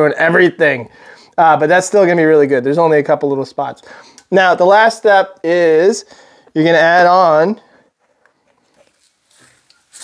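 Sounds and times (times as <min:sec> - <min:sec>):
soft rustle: 0:08.0 - 0:10.0.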